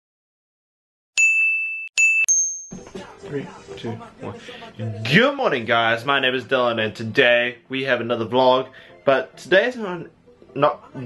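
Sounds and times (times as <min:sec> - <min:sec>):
high bell-like ding: 0:01.2 - 0:02.8.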